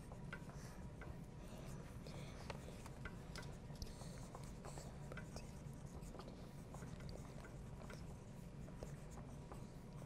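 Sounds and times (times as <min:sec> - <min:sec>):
low room hum: 0:00.0 - 0:10.0
pencils scratching on paper: 0:00.0 - 0:10.0.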